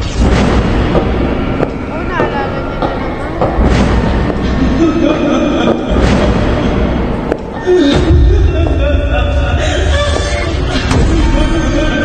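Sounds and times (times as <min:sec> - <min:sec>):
low sinister music: 0:00.0 - 0:12.0
woman laughing maniacally: 0:04.4 - 0:07.0.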